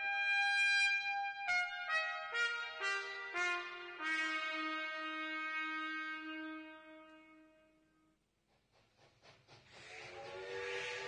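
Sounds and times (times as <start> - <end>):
steam locomotive chuffs: 8.5 - 11.0
hiss of steam: 9.5 - 11.0
chord-like steam whistle: 9.9 - 11.0.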